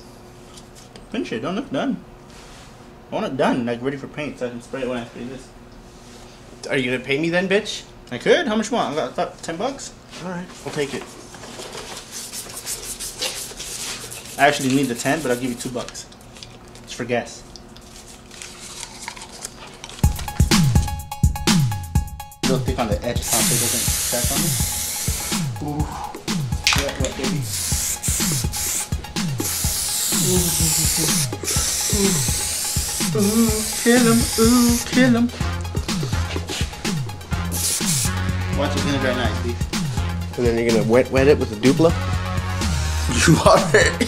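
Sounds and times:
sandpaper rubbing back and forth: 12.1s - 15.6s, 23.2s - 25.5s, 27.3s - 35.3s, 37.5s - 38.2s
background music with deep bass: 20.0s - 44.0s
spray paint can hissing: 23.2s - 25.5s, 27.4s - 35.1s, 37.5s - 38.2s.

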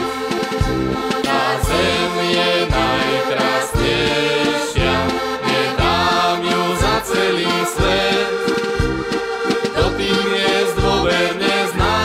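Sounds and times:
button accordions playing folk tune: 0.0s - 12.0s
voices singing together: 1.0s - 12.0s.

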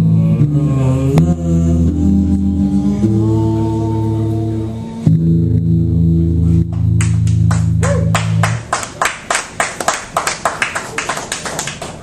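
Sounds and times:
small audience applauding: 7.0s - 12.0s.

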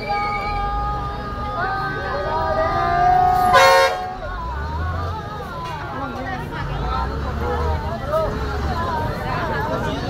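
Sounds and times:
crowd voices: 0.0s - 10.0s
vehicle horn honk: 3.4s - 4.2s.

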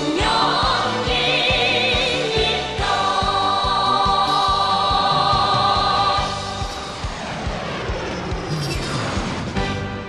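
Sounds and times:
choir singing over a beat: 0.0s - 7.2s
jet aircraft flying past: 5.5s - 10.0s.

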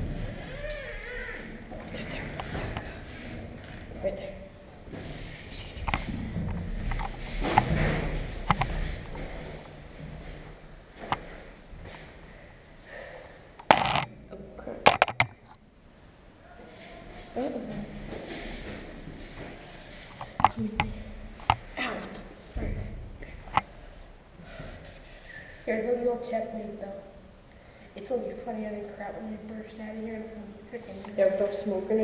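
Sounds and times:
muffled rustling and handling noise: 1.6s - 12.5s, 16.4s - 25.7s
sharp clicks and knocks: 13.6s - 14.2s, 14.8s - 15.6s.

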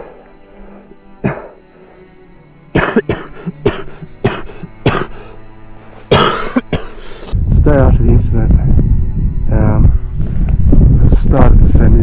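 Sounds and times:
soft background music: 0.0s - 12.0s
person coughing: 1.2s - 1.6s, 2.7s - 5.3s, 6.1s - 7.0s.

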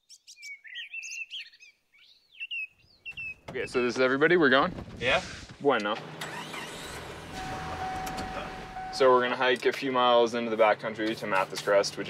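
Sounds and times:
engine and road rumble: 3.3s - 12.0s.

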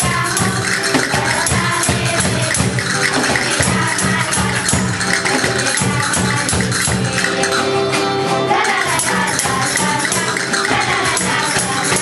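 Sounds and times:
cajones beating a steady rhythm: 0.0s - 12.0s
hand percussion rattling: 0.0s - 12.0s.

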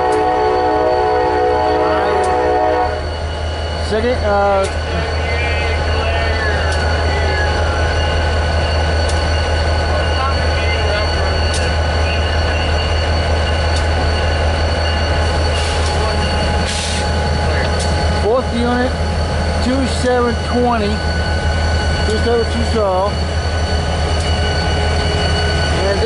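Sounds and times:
locomotive engines idling: 0.0s - 26.0s
thin whine: 2.0s - 26.0s.

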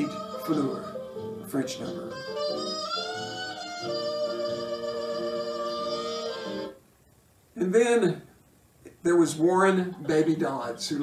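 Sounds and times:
jazz band accompaniment: 0.0s - 6.8s
soprano saxophone melody: 0.0s - 6.8s.

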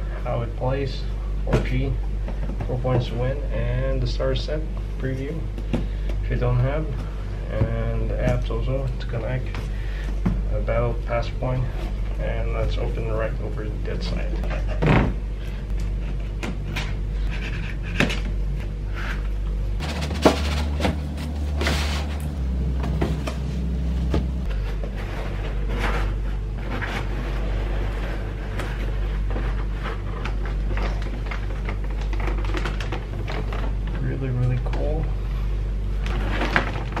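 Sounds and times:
plastic bag rustling: 19.8s - 28.4s.

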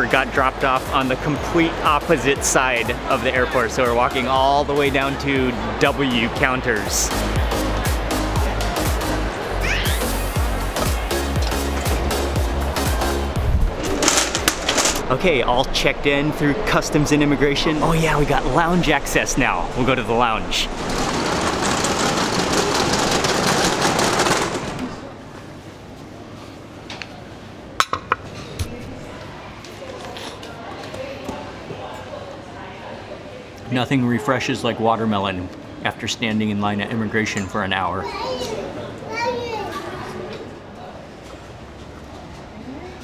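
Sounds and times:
high-pitched children's voices: 9.6s - 10.4s, 38.0s - 40.5s
trolley wheels rattling on tiles: 13.8s - 15.0s, 20.5s - 25.1s.

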